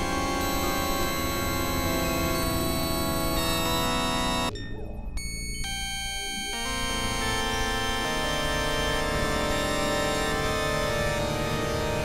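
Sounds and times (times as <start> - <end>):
dissonant synthesizer drone: 0.0 - 12.0.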